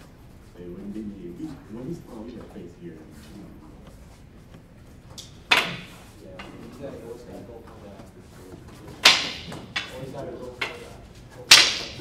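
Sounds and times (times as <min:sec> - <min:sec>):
wooden sticks striking: 0:03.8 - 0:06.8, 0:08.9 - 0:12.0.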